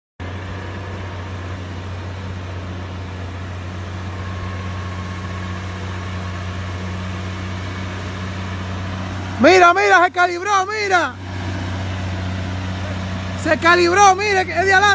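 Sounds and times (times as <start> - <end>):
truck diesel engine running: 0.2 - 14.9.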